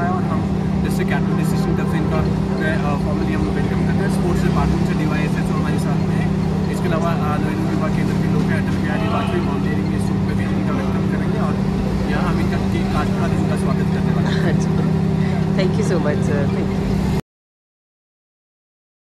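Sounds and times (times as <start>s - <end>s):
man talking: 0.0s - 15.4s
low drone in a tunnel: 0.0s - 17.0s.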